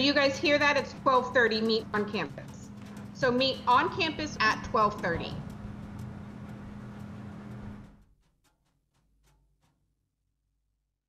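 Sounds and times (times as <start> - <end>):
low hum with hiss: 0.0 - 8.1.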